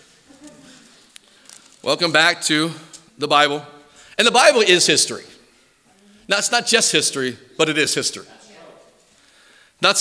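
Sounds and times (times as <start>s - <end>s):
man speaking: 1.8s - 5.4s, 6.3s - 8.3s, 9.8s - 10.0s.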